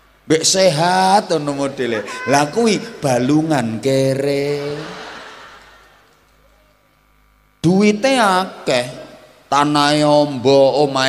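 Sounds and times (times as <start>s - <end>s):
faint sound system hum: 0.0s - 11.0s
man's voice over loudspeaker: 0.3s - 5.0s, 7.6s - 11.0s.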